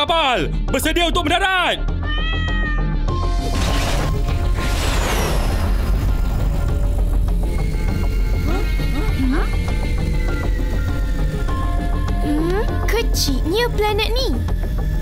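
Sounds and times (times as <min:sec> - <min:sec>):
background music: 0:00.0 - 0:15.0
cartoon cat meowing: 0:02.0 - 0:03.0.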